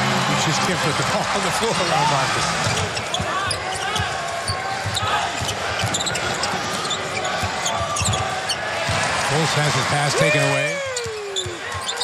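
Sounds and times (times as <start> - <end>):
arena crowd noise: 0.0 - 12.0
sneakers squeaking: 2.6 - 9.1, 10.8 - 12.0.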